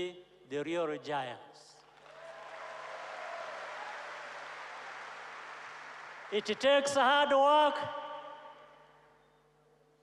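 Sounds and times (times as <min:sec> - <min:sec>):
large crowd applauding: 0:01.8 - 0:07.1
faint cheer: 0:02.0 - 0:06.3.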